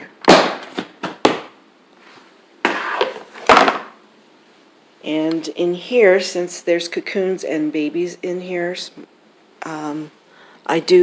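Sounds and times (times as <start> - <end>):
plastic lid scraping rustles: 2.6 - 3.9.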